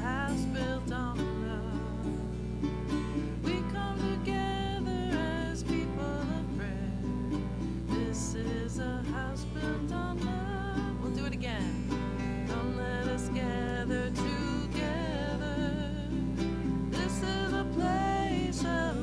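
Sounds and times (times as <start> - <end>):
acoustic guitar plucked and strummed: 0.0 - 19.0
person singing: 0.0 - 19.0.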